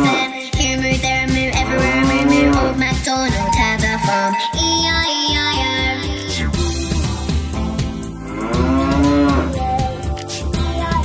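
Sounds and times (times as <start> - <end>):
children's song backing track: 0.0 - 11.0
cow mooing: 1.6 - 2.9, 8.2 - 9.7.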